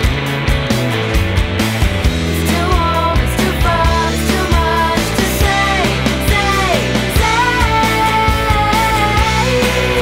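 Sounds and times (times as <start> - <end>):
bass and guitars: 0.0 - 10.0
drums beating: 0.0 - 10.0.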